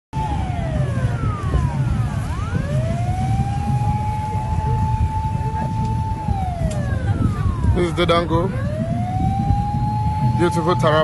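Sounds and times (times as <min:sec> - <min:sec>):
continuous low rumble: 0:00.2 - 0:11.0
siren wailing: 0:00.2 - 0:11.0.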